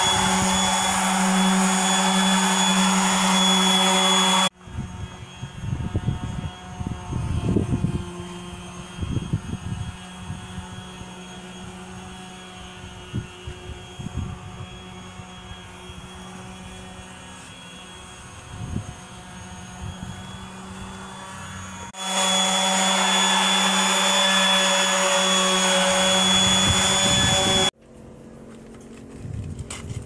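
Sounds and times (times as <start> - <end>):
orbital sander whining on metal: 0.0 - 27.8.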